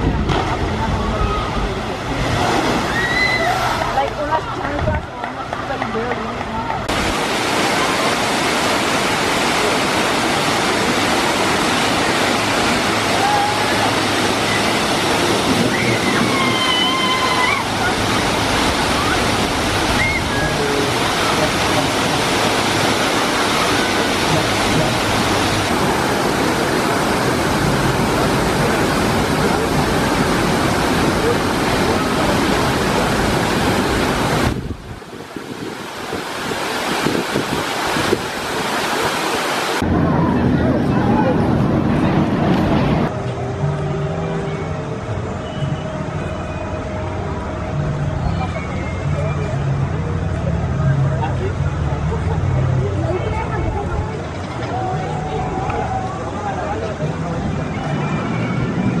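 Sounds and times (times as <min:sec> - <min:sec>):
waterfall rushing and splashing: 0:00.0 - 0:04.8, 0:06.7 - 0:43.2.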